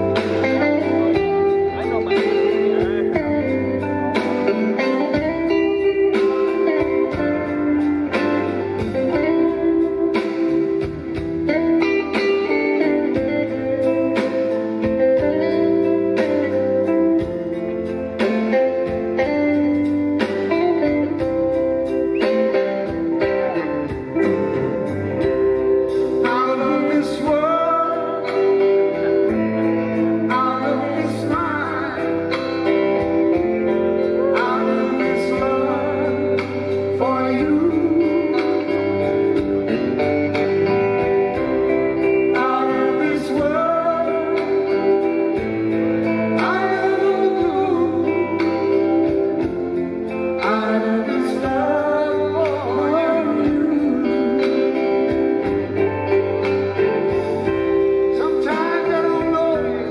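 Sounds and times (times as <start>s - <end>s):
drums keeping a steady beat: 0.0s - 59.9s
electric bass: 0.0s - 59.9s
electric guitars: 0.0s - 59.9s.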